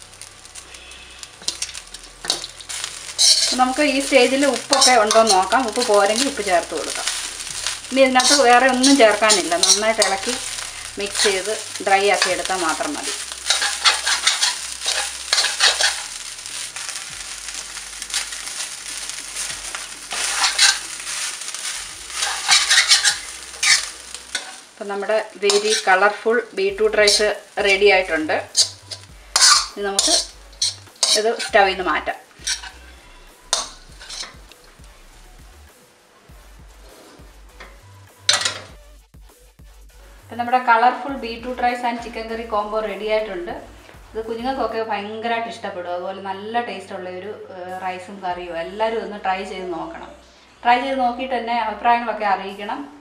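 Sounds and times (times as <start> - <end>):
frying sizzle: 0.0 - 38.8
spatula scraping frying pan: 0.2 - 24.8, 25.4 - 34.5, 36.8 - 38.8.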